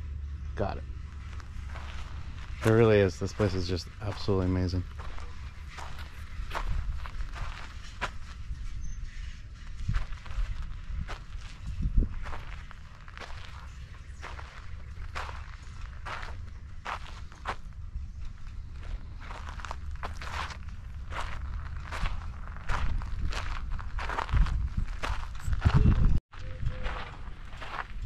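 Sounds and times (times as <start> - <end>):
low rumble: 0.0 - 28.0
footsteps on sandy dirt: 0.6 - 28.0.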